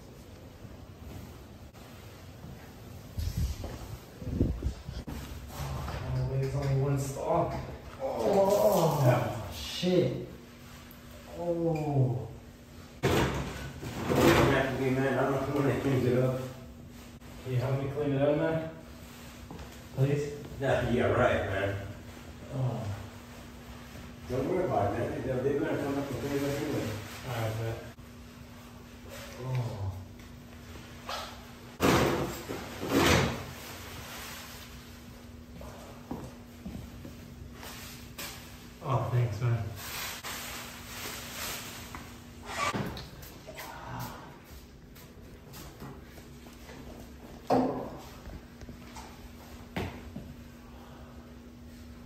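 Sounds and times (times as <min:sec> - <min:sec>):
paper towels rustling: 0:13.6 - 0:29.4, 0:32.2 - 0:35.5, 0:36.9 - 0:43.4.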